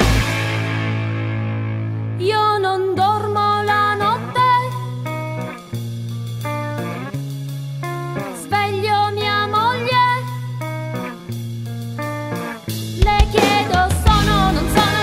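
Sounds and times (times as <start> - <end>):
punk rock electric guitar: 0.0 - 15.0.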